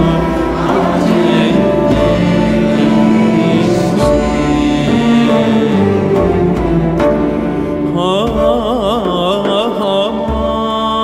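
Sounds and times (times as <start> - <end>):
bowed strings: 0.0 - 11.0.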